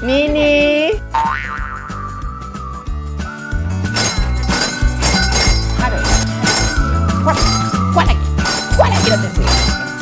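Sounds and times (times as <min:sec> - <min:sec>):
background music with bass: 0:00.0 - 0:10.0
cartoon boing sound effect: 0:01.1 - 0:02.1.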